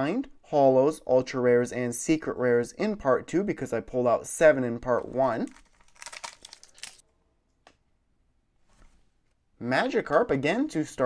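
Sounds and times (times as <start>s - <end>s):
foil wrapper crinkling torn open: 5.5s - 7.0s.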